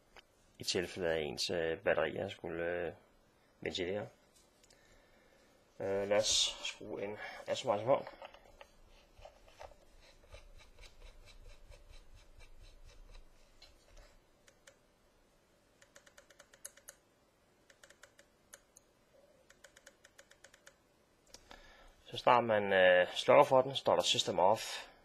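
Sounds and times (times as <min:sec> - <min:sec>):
faint metal scratching: 0:05.8 - 0:14.2.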